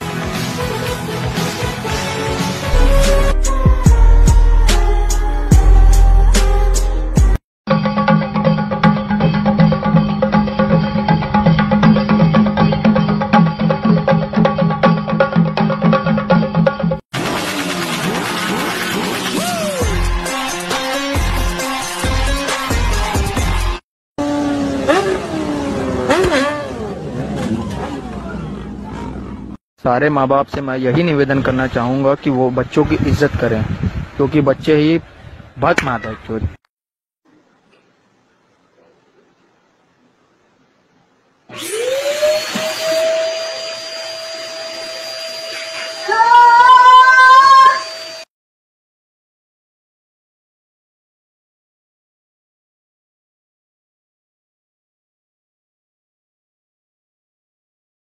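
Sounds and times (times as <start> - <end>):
rising whines: 24.2 - 29.6, 41.5 - 48.3
vehicle engine and road noise: 24.2 - 29.6
wavering high-pitched cry: 42.8 - 48.2.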